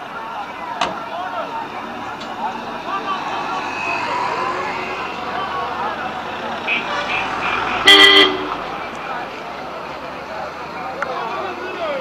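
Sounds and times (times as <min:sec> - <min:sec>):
crowd chatter: 0:00.0 - 0:12.0
street traffic: 0:00.0 - 0:12.0
vehicle horn honk: 0:06.6 - 0:08.6.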